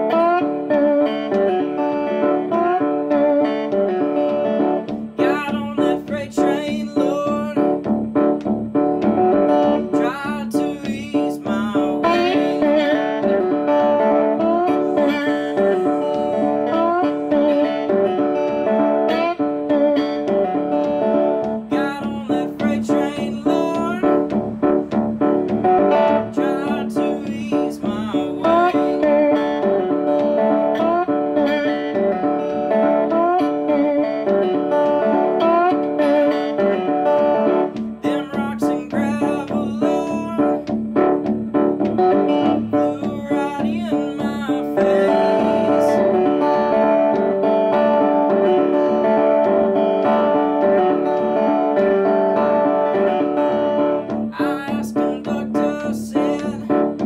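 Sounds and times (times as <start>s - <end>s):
slide electric guitar blues: 0.0s - 57.0s.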